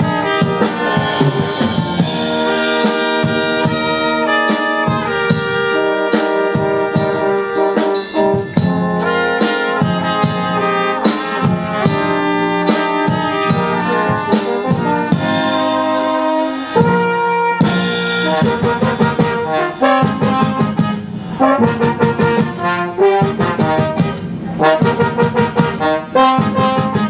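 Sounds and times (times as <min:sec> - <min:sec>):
brass quintet playing: 0:00.0 - 0:27.0
drum kit beat: 0:00.0 - 0:27.0.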